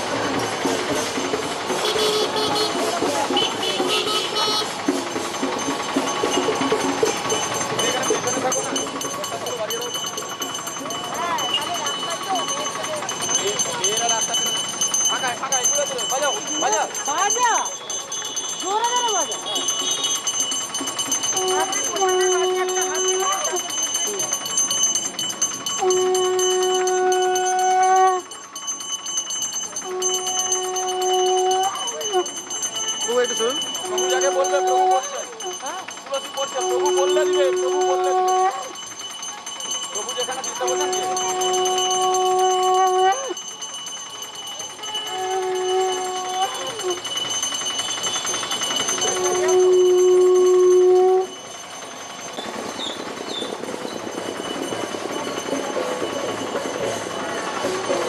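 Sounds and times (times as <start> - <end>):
bell ringing: 0.0 - 58.0
street crowd background noise: 0.0 - 58.0
conch shell blown: 1.7 - 5.0, 21.4 - 23.5, 25.8 - 28.2, 29.8 - 32.3, 36.7 - 38.7, 40.6 - 43.4, 44.8 - 47.1, 49.0 - 51.4.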